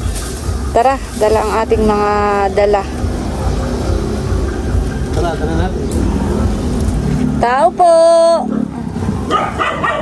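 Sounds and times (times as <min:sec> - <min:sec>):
low rumble: 0:00.0 - 0:09.3.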